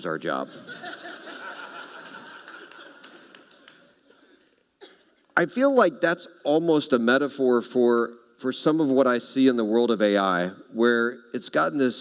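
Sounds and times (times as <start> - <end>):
audience laughing: 0.5 - 3.9.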